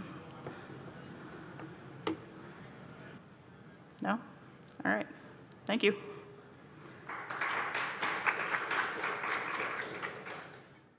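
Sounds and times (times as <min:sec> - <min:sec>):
audience applauding: 0:06.9 - 0:10.7.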